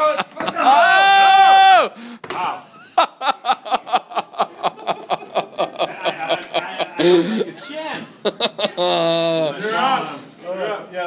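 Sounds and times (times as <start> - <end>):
laughter: 0.0 - 1.0, 2.8 - 9.5.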